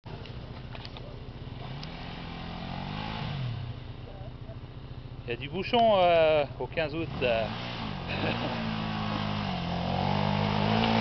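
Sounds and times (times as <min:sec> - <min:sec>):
motorcycle engine revving: 0:00.1 - 0:11.0
motorcycle engines running: 0:00.1 - 0:11.0.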